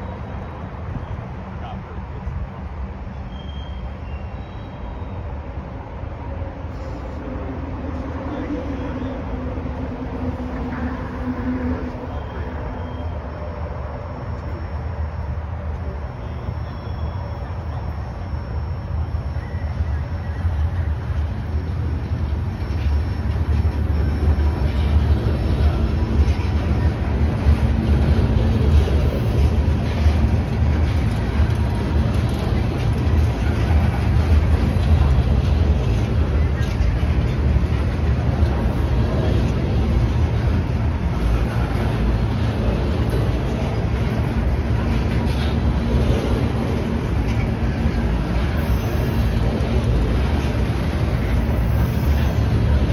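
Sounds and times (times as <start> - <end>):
train wheels rumbling on rail: 0.0 - 52.9
sharp rail clicks: 21.1 - 52.9.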